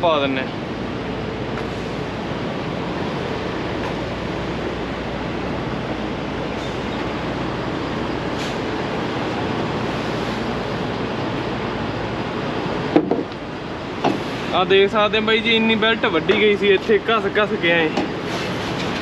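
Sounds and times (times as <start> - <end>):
trucks idling: 0.0 - 19.0.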